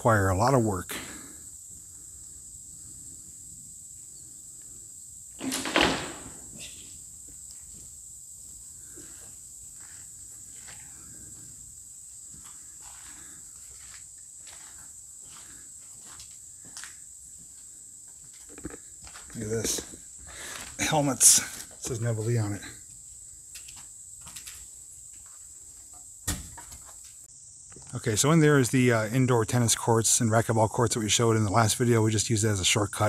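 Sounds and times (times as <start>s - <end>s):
footsteps on concrete floor: 7.2s - 11.5s, 12.1s - 20.8s
crunching scuff: 12.3s - 21.8s.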